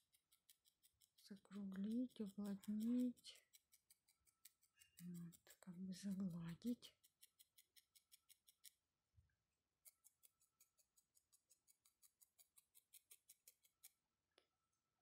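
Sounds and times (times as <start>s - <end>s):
felting needle ticking into wool: 0.0s - 8.8s, 9.8s - 14.0s.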